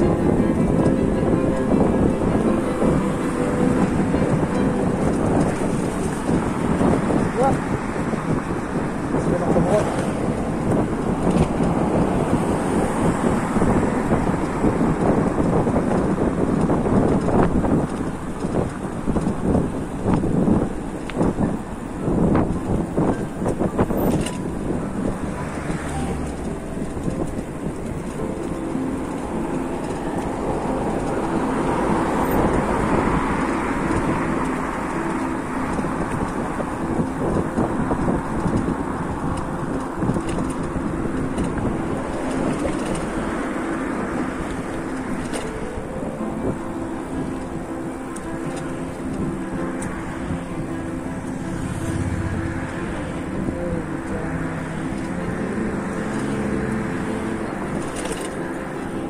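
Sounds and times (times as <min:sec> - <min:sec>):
quiet background music: 0:00.0 - 0:07.6, 0:23.4 - 0:59.0
cars passing on road: 0:00.0 - 0:59.0.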